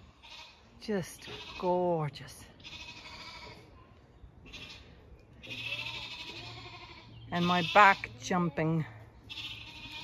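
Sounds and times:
sheep bleating: 0:00.1 - 0:01.9, 0:02.6 - 0:03.6, 0:05.4 - 0:08.2, 0:09.3 - 0:10.0.

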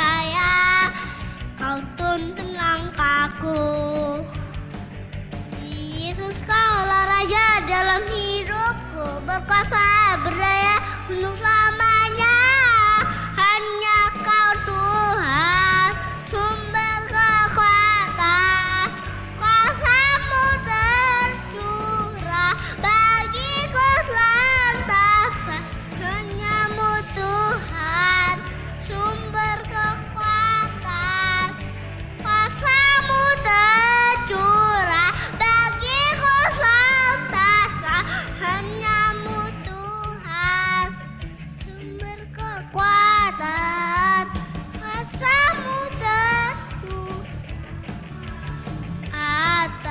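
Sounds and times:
boy singing into a microphone: 0:00.0 - 0:04.6, 0:05.6 - 0:31.6, 0:32.2 - 0:47.4, 0:49.1 - 0:49.9
backing track: 0:00.0 - 0:49.9
musical accompaniment: 0:00.0 - 0:49.9.

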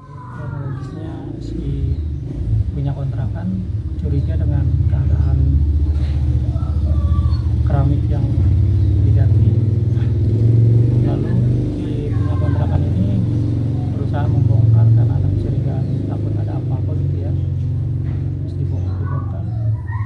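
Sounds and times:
man talking: 0:00.0 - 0:06.1, 0:07.5 - 0:10.2, 0:10.8 - 0:17.7, 0:18.3 - 0:19.8
engine idling: 0:00.0 - 0:19.9.

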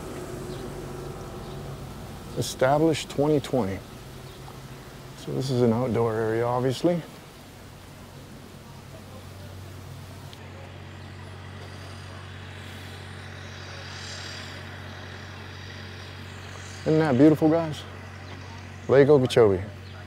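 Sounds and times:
faint high hiss: 0:00.0 - 0:10.4
low machine hum: 0:00.0 - 0:20.0.

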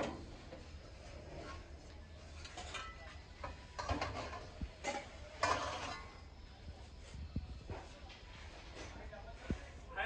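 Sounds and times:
metal vessels clinking and scraping: 0:00.0 - 0:06.4.

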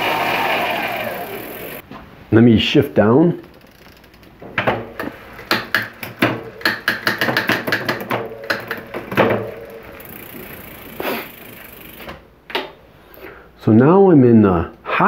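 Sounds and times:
bicycle wheel spinning: 0:00.0 - 0:01.8, 0:03.4 - 0:12.3
chain shifting across cassette: 0:05.0 - 0:12.1.

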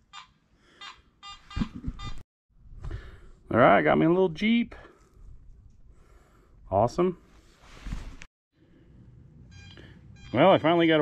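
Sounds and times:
metal detector beeping: 0:00.1 - 0:02.2, 0:09.5 - 0:10.7.

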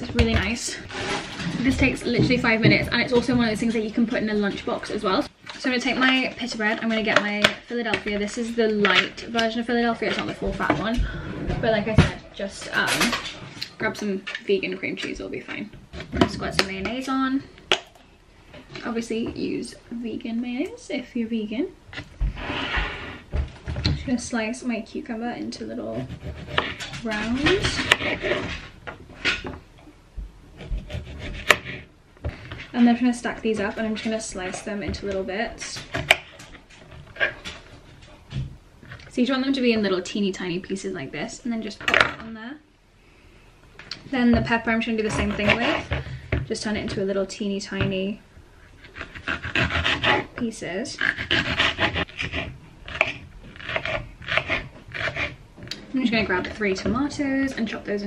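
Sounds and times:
knife cutting cucumber: 0:51.0 - 0:55.4.

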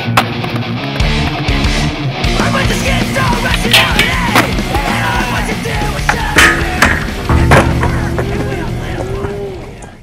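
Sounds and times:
loud rock music: 0:00.0 - 0:09.8.

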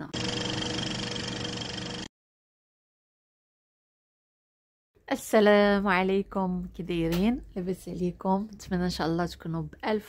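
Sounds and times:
film projector rattling: 0:00.2 - 0:02.1.

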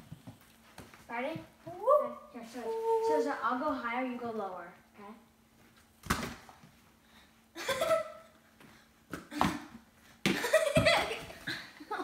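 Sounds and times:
balls slapping into hands: 0:06.0 - 0:06.7, 0:09.1 - 0:11.2.

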